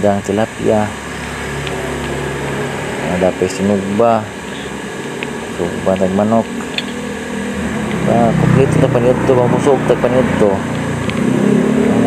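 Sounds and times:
small motor humming: 0.9s - 12.0s.

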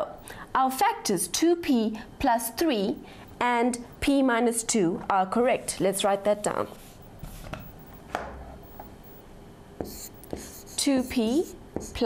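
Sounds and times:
woman speaking: 0.0s - 6.8s, 10.7s - 12.0s
marker scratching on board: 9.8s - 12.0s
marker tapping on board: 9.8s - 12.0s.

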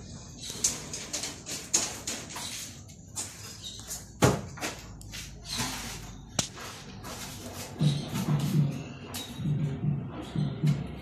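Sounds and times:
materials scraping and shuffling: 0.8s - 9.4s.

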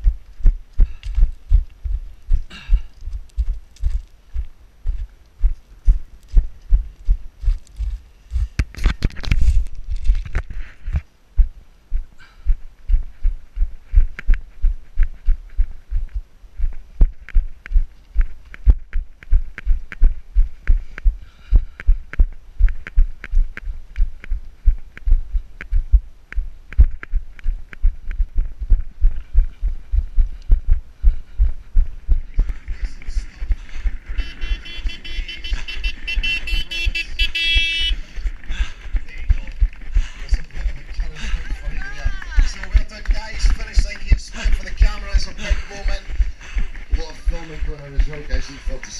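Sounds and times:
footsteps on rocky path: 0.0s - 48.9s.

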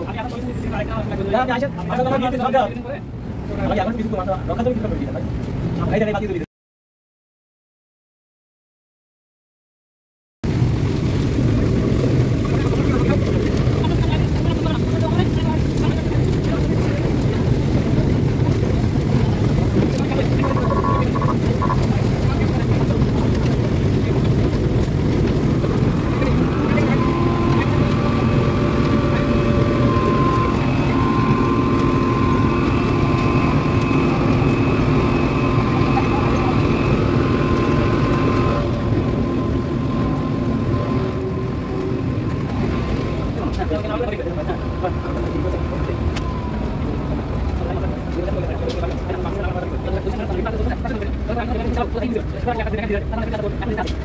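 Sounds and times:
burner and blower fan drone: 10.5s - 54.0s
high whine: 11.3s - 50.8s.

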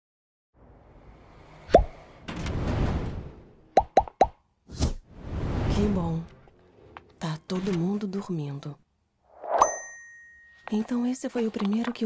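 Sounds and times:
cartoon pop bloops: 3.8s - 4.4s.

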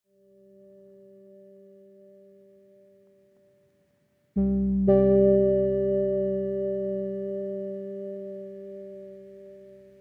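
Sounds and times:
faint sustained electronic chord: 0.2s - 10.0s.

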